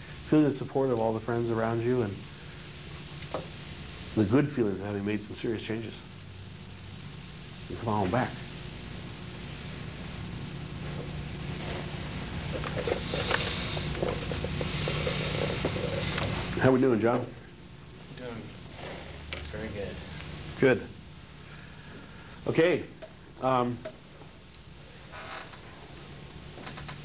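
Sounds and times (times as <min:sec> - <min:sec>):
low hum with hiss: 0:00.0 - 0:27.0.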